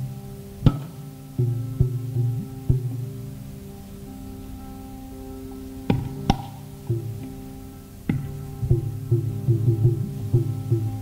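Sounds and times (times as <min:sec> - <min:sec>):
hand-drum strokes: 0:00.0 - 0:11.0
tambura drone: 0:00.0 - 0:11.0.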